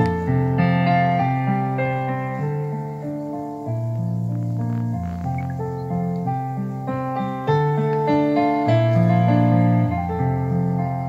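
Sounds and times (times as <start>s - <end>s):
stage piano chords: 0.0s - 11.0s.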